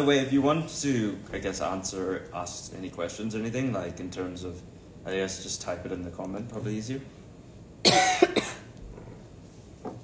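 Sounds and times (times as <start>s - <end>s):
person coughing: 7.8s - 8.8s.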